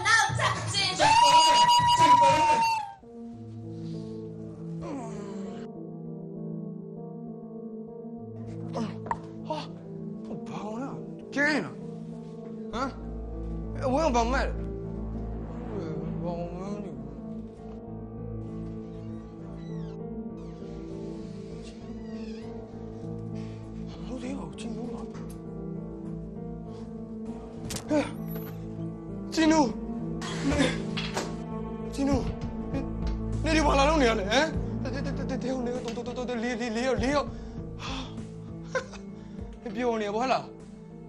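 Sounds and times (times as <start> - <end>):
background music with sustained chords: 0.0 - 41.0.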